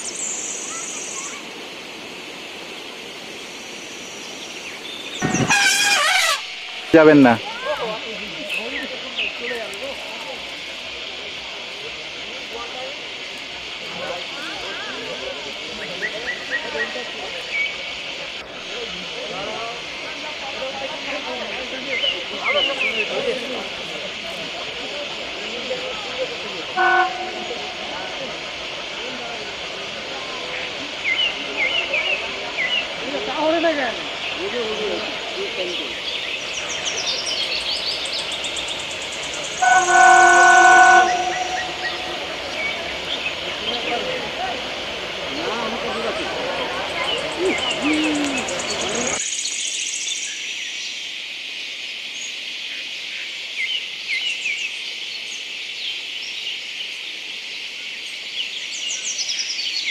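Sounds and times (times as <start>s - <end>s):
steady hiss: 0.0s - 59.9s
short chirping calls: 3.5s - 7.6s, 35.8s - 43.4s
locomotive horn toot: 5.2s - 7.4s, 26.7s - 28.2s, 39.6s - 42.5s.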